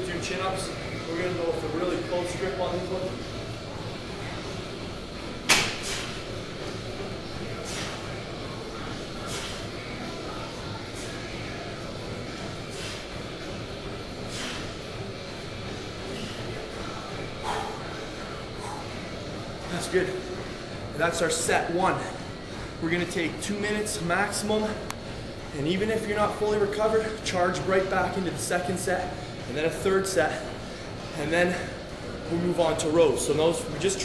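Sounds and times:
gym background noise: 0.0 - 34.0.

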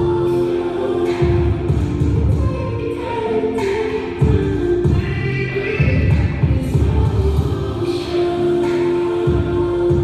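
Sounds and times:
music with sung voices: 0.0 - 10.0.

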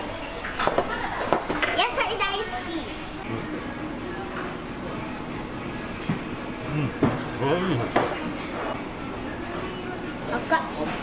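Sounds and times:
child's voice: 1.7 - 2.9
dishes and chopsticks clinking: 7.9 - 8.8.

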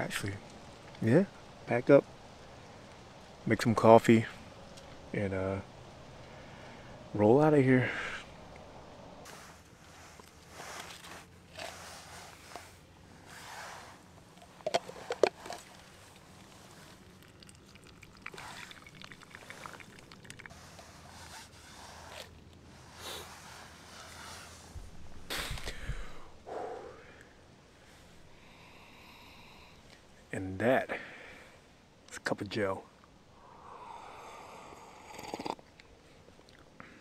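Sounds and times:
rustles and scrapes: 9.2 - 17.4, 18.3 - 25.8.

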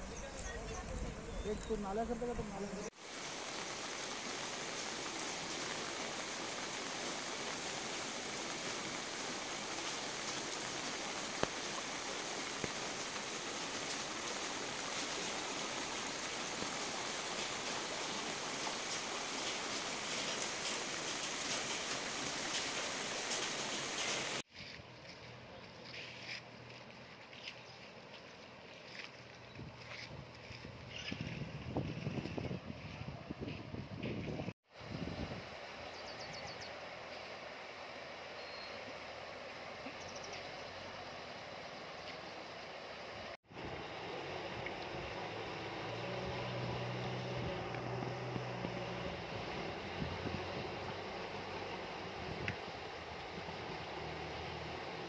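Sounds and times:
floodwater rushing: 0.0 - 24.5, 36.7 - 55.0.

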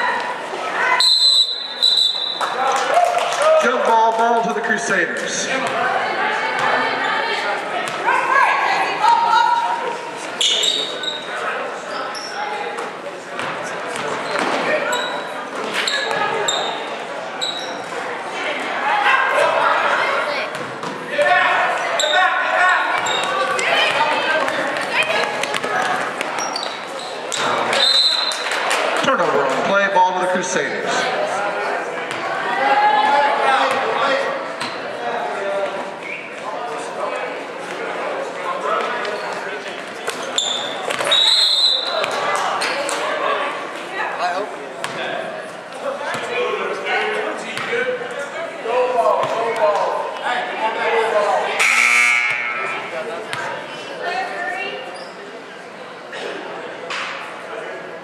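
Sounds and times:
voices calling out in hall: 0.0 - 58.0.

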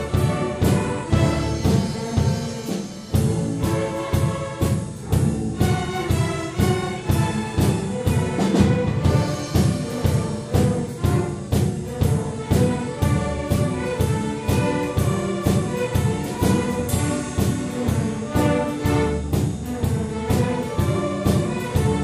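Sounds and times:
drum set beat: 0.0 - 22.0
string orchestra playing: 0.0 - 22.0.

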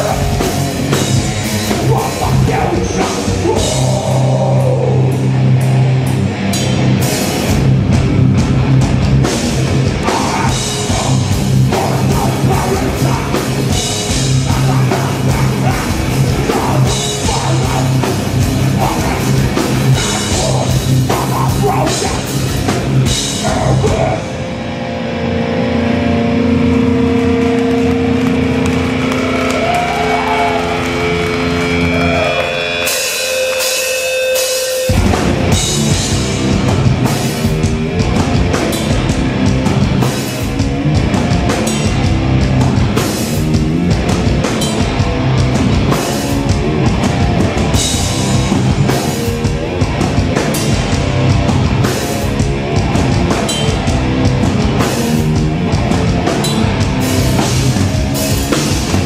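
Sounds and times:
drum kit: 0.0 - 24.8, 25.6 - 59.0
distorted guitars: 0.0 - 59.0
heavy hardcore band playing live: 0.0 - 59.0.

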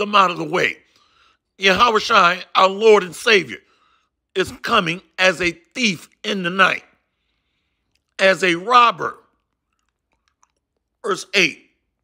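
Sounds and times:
person speaking: 0.0 - 1.0, 1.6 - 7.0, 7.9 - 12.0
faint mouth clicks: 9.3 - 11.0.

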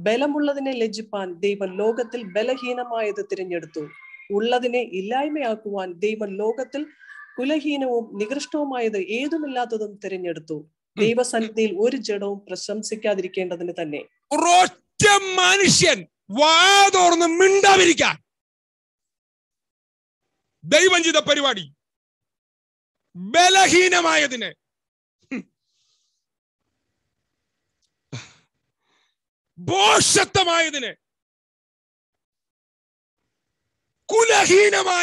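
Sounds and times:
man speaking into microphone: 14.3 - 18.2
man speaking loudly: 14.3 - 18.2, 20.6 - 21.7, 23.2 - 24.6, 29.6 - 31.0, 34.1 - 35.0.

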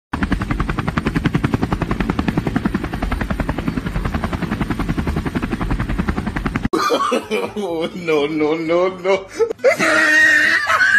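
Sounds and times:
helicopter rotor chopping: 0.1 - 6.8.

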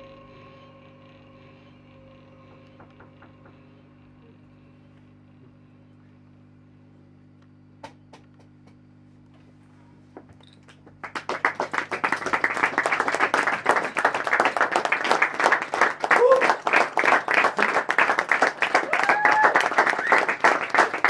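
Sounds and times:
audience applauding: 10.7 - 21.0.

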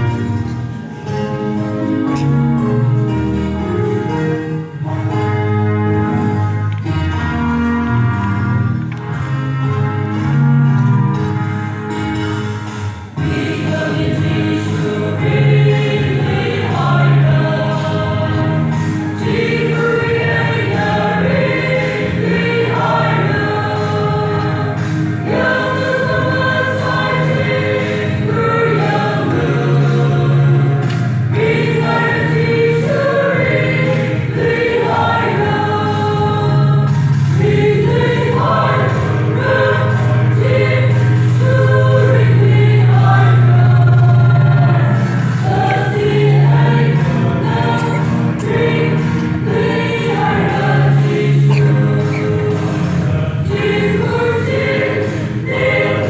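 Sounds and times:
women's choir singing gospel: 13.1 - 56.0.

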